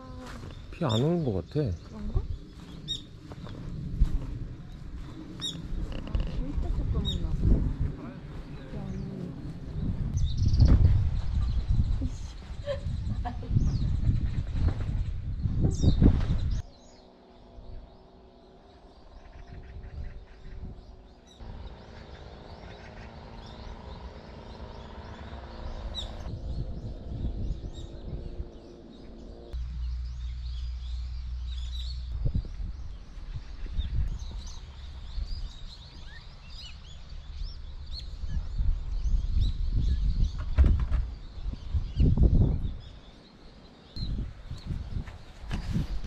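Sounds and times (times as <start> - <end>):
low wind rumble on microphone: 0.0 - 46.0
bird chirps: 15.6 - 45.9.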